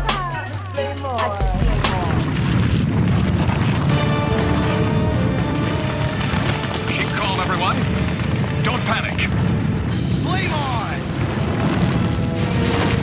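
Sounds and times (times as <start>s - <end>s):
low rumbling building collapse: 1.6s - 13.0s
dramatic orchestral score: 3.9s - 13.0s.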